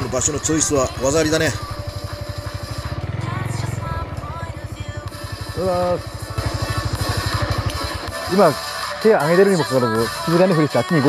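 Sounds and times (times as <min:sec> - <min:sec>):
motorcycle engine running slowly: 0:00.0 - 0:08.8
background music: 0:00.0 - 0:11.0.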